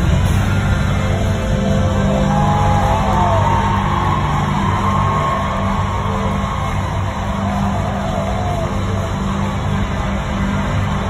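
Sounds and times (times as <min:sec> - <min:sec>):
loud r and b concert music: 0:00.0 - 0:11.0.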